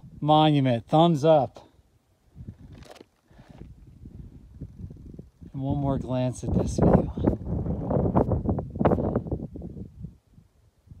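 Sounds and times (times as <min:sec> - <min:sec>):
wind buffeting microphone: 0:02.2 - 0:11.0.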